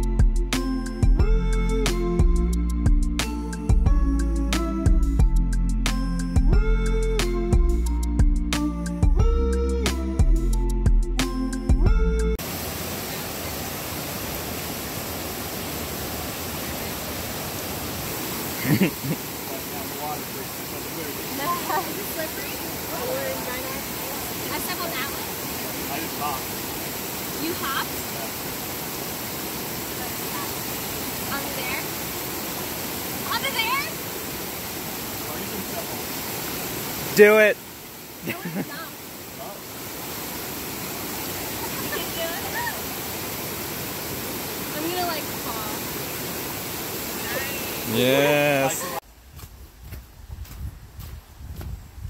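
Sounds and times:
creek rushing over rocks: 12.4 - 49.2.

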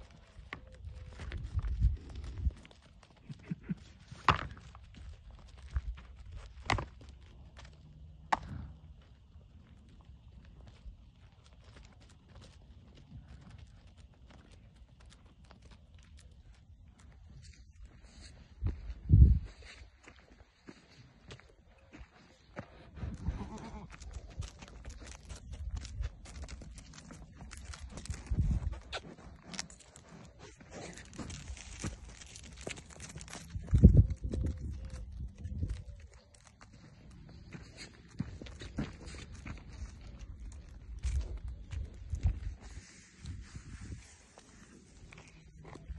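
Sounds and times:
hooves clicking on dirt: 0.0 - 45.9.

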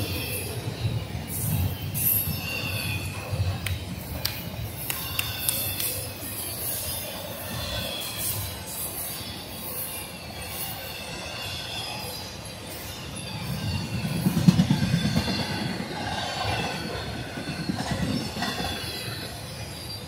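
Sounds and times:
steel wheels rumbling on rail: 0.0 - 20.0.

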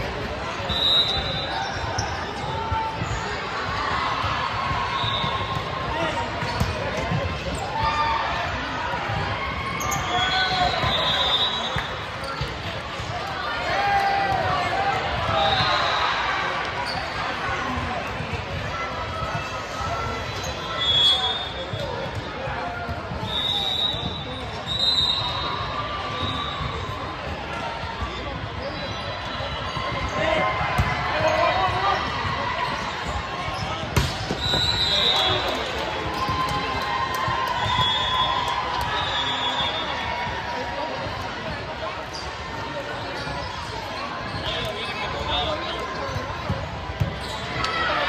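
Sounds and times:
sneakers squeaking on court: 0.6 - 3.4, 9.8 - 12.7, 16.7 - 17.4, 42.0 - 47.8
balls bouncing: 29.8 - 34.7
ball struck with sharp smacks: 34.0 - 34.4
people talking: 37.7 - 48.0.

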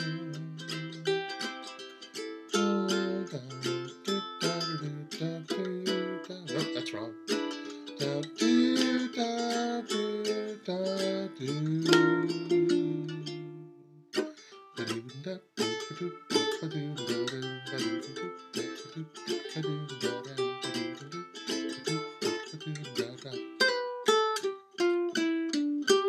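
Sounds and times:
ukulele plucked: 0.0 - 26.0.

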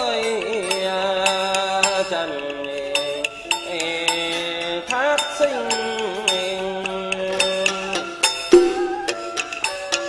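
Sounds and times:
sharp percussion strikes: 8.3 - 10.0
sustained sliding melodic line: 8.5 - 9.6.

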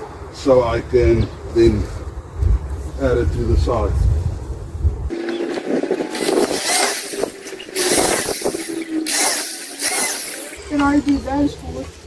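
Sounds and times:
electric drill boring into wood: 5.9 - 10.6.

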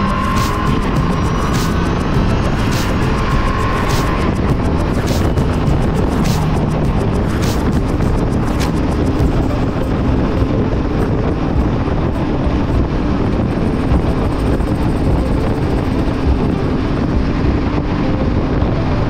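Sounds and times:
motorcycle engine cruising: 0.0 - 19.0
wind rushing over microphone: 0.0 - 19.0.

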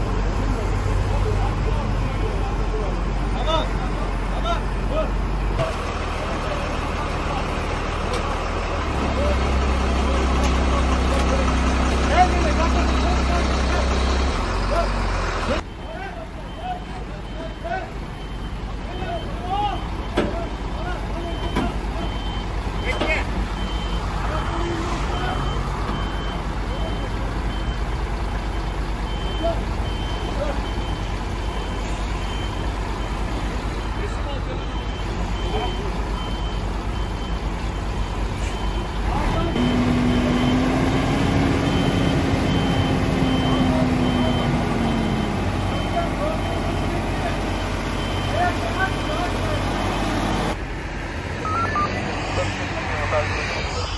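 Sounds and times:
truck engine revving: 0.0 - 15.8, 16.5 - 31.7, 38.6 - 53.9
truck engines idling: 0.0 - 53.9
vehicle warning beeper: 15.5 - 50.6, 51.3 - 53.9.

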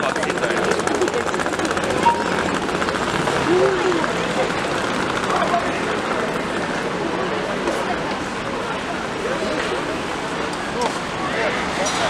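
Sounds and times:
indistinct voices of passers-by: 0.0 - 12.0
traffic going by: 0.3 - 12.0.

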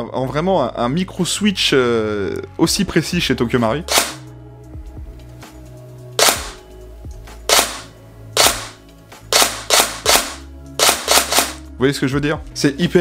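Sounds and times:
airsoft gun shots: 3.9 - 4.2, 6.2 - 6.6, 7.5 - 11.6
recoil mechanism knocking: 9.4 - 11.6.

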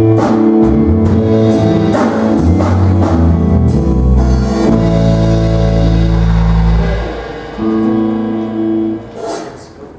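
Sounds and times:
electric guitar chord ringing: 0.0 - 9.2
live gospel band music: 0.0 - 9.9.

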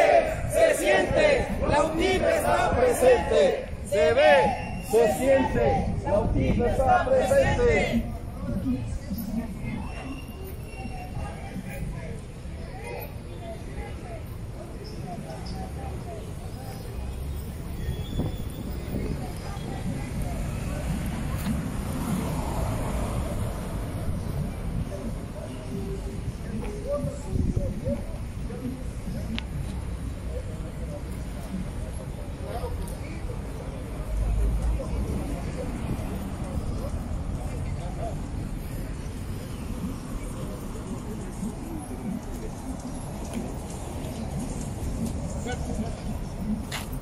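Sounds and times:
indistinct voices: 0.0 - 47.0
road traffic rumble: 0.0 - 47.0
wind on microphone: 5.5 - 9.0, 17.9 - 29.3.

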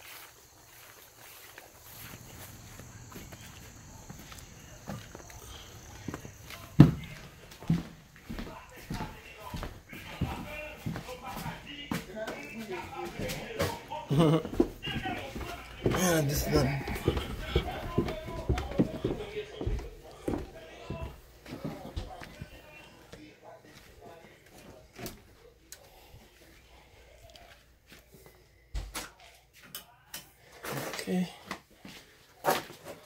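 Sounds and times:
footsteps: 0.0 - 29.7
indistinct voices: 1.8 - 28.0.

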